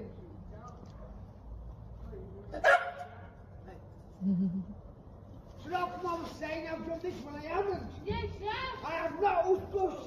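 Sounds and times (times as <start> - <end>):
small dog barking: 2.6 - 3.2.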